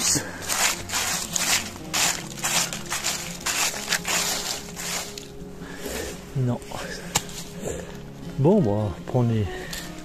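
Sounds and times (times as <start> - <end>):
stick raking through dry leaves: 0.0 - 6.2.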